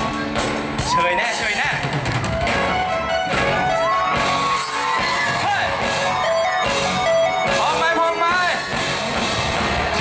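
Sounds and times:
live pop-rock band playing: 0:00.0 - 0:10.0.

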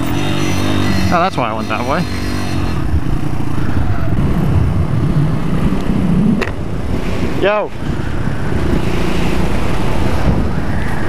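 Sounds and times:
motorcycle engines rumbling: 0:00.0 - 0:11.0.

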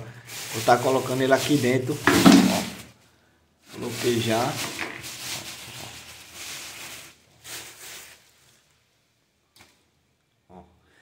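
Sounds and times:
plastic sack rustling: 0:00.0 - 0:03.0, 0:03.6 - 0:08.7.

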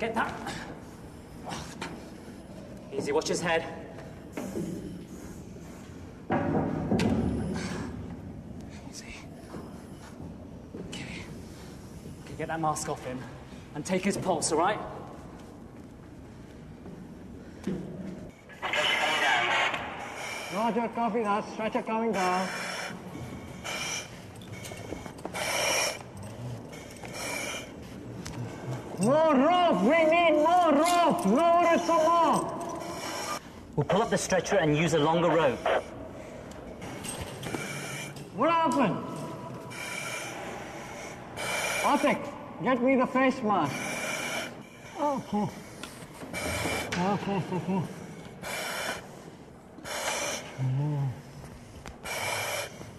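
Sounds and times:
voice over two-way radio: 0:18.6 - 0:19.9, 0:35.1 - 0:35.9
breathing through face mask: 0:19.9 - 0:29.1, 0:29.7 - 0:38.4, 0:39.1 - 0:42.5, 0:43.4 - 0:52.9.

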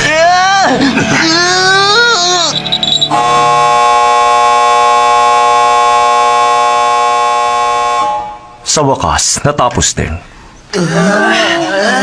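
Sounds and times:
loud buzzer tone: 0:02.4 - 0:08.3.

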